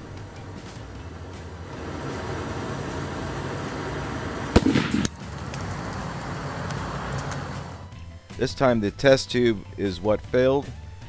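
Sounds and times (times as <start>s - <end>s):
gas torch flame hissing: 0.0s - 7.9s
rush of escaping steam: 1.7s - 4.6s
glass tube bursting bang: 4.5s - 5.2s.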